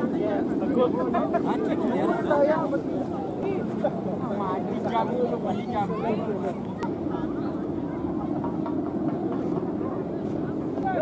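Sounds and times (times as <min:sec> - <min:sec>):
crowd voices: 0:00.0 - 0:11.0.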